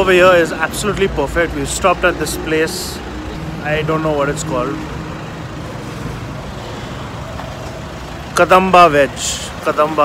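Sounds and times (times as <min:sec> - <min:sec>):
roadside traffic noise: 0:00.0 - 0:10.0.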